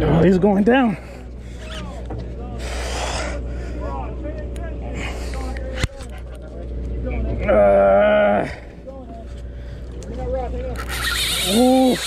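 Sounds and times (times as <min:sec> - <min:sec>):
boat engine droning: 0:00.0 - 0:12.0
distant voices: 0:00.0 - 0:12.0.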